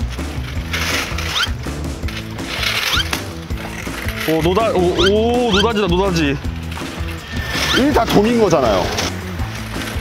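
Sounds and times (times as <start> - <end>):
background music: 0.0 - 10.0
wheeled device rattling on asphalt: 0.0 - 10.0.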